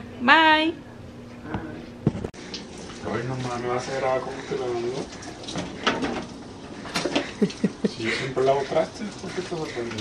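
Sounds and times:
person chuckling: 7.0 - 8.4.

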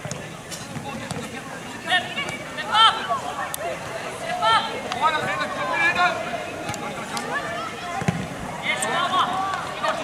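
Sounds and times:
ball thump: 8.0 - 8.3.

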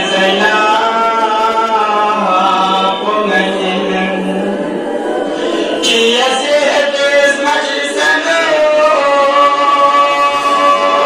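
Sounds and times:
man chanting elegy: 0.0 - 4.4, 5.7 - 11.0.

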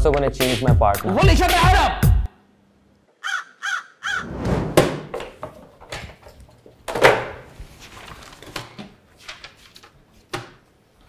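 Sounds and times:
crow cawing: 3.2 - 4.3.

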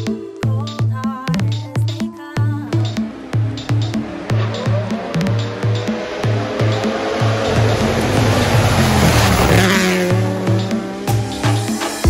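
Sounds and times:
electronic music with beat: 0.0 - 12.0.

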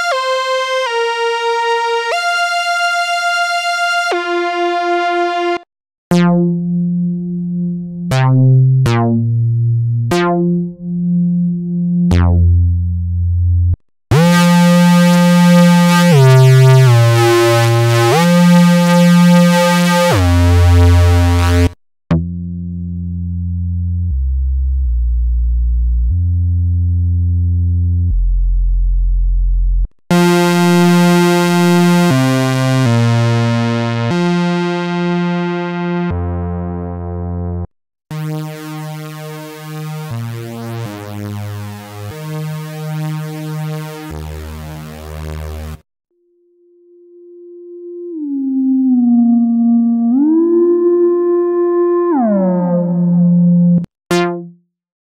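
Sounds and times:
deep synth bass notes: 0.0 - 45.8, 46.8 - 54.6.

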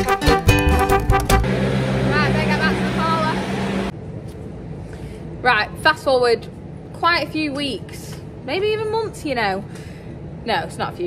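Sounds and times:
tractor humming: 0.5 - 3.9.

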